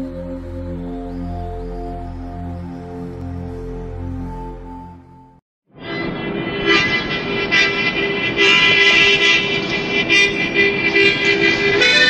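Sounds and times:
harmonica chords: 6.3s - 12.0s.

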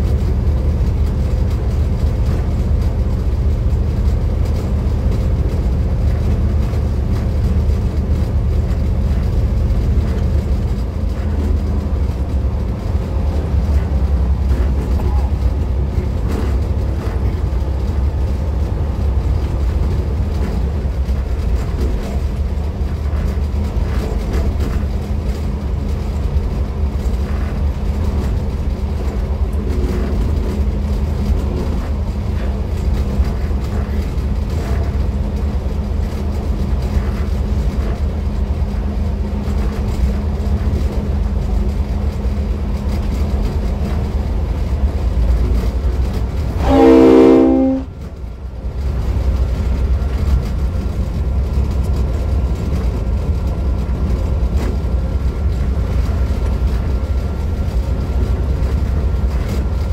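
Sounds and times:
diesel locomotive rumbling: 0.0s - 59.9s
locomotive horn blast: 46.6s - 48.1s.

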